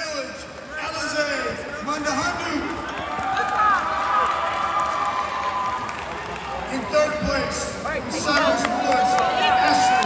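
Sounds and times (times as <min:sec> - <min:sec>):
crowd chatter in large hall: 0:00.0 - 0:10.0.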